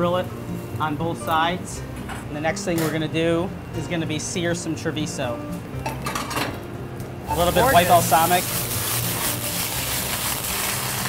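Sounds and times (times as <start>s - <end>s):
vegetables sizzling in a pan: 7.3s - 11.0s.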